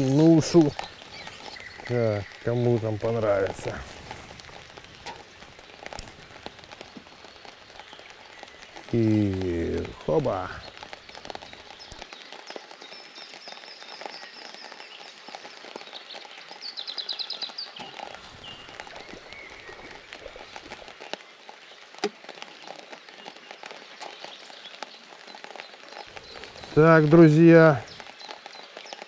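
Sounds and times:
rain pattering on water: 0:00.0 - 0:29.0
songbird singing: 0:00.0 - 0:29.0.

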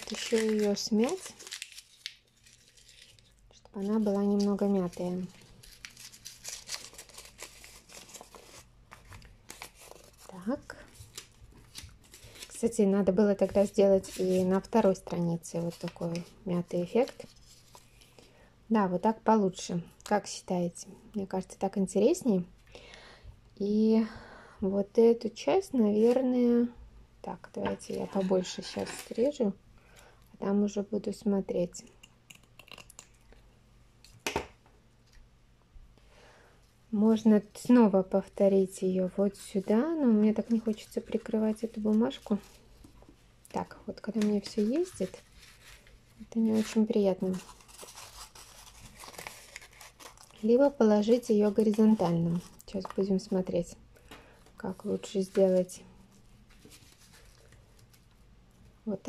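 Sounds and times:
paper crumpling: 0:00.0 - 0:12.7, 0:44.1 - 0:53.0, 0:55.0 - 0:58.2.

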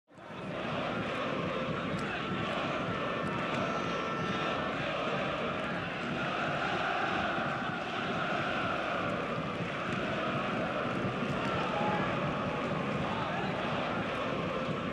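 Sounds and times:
stadium crowd ambience: 0:00.1 - 0:14.9.

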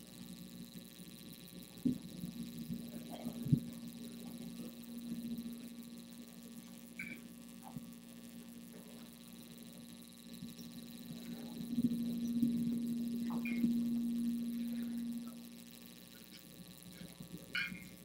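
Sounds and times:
electrical hum: 0:00.0 - 0:18.0.

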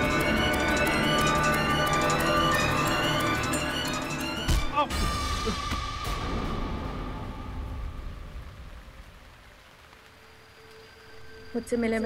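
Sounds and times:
music tone: 0:00.0 - 0:06.3
rain-like hiss: 0:04.3 - 0:12.0.

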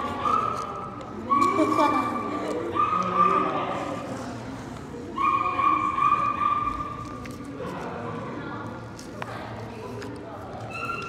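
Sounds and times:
voices in the room: 0:00.0 - 0:11.0.

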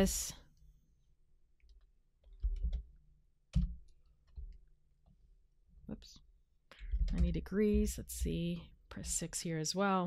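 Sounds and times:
person speaking: 0:07.1 - 0:10.0.

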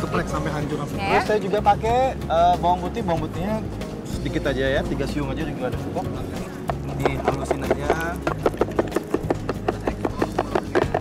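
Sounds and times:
mortar and pestle pounding: 0:05.8 - 0:11.0.

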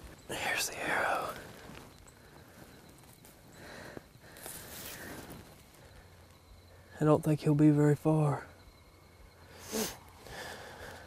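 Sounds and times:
rustling of dry grass and clothing: 0:00.0 - 0:07.1.

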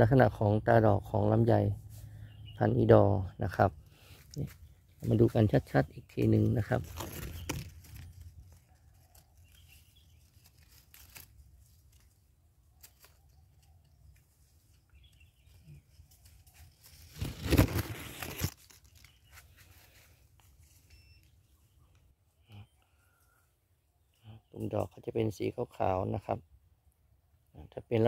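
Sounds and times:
leaves rustling near microphone: 0:03.4 - 0:21.6.

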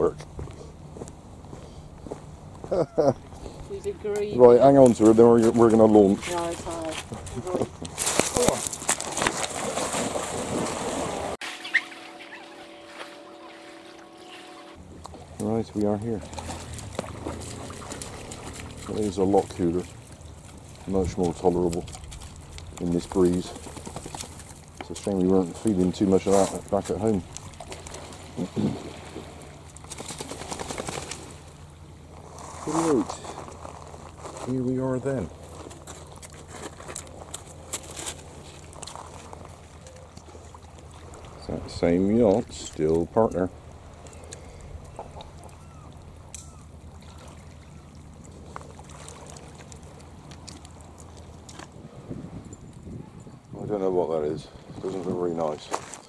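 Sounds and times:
water lapping among pebbles: 0:03.4 - 0:52.4
low engine drone: 0:11.3 - 0:24.9.

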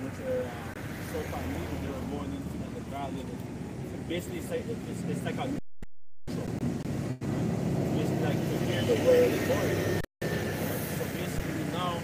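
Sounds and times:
street traffic rumble: 0:00.0 - 0:05.6, 0:06.3 - 0:12.0.

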